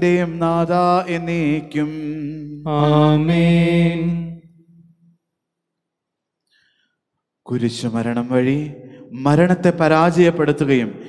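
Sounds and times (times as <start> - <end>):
man chanting prayers: 0.0 - 4.4, 7.5 - 11.0.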